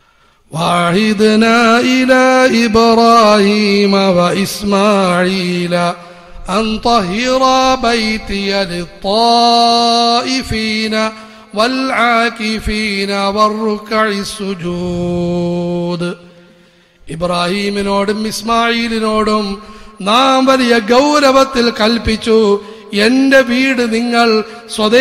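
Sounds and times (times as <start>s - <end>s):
man chanting a recitation: 0.5s - 25.0s.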